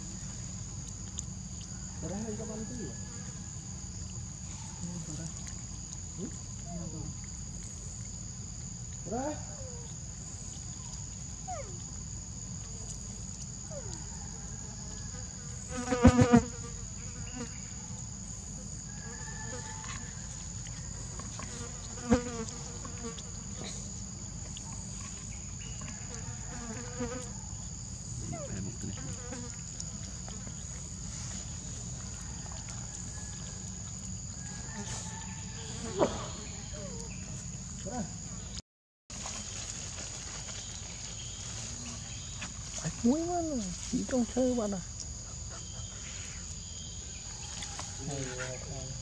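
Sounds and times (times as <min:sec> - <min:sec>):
insects droning: 0:00.0 - 0:49.0.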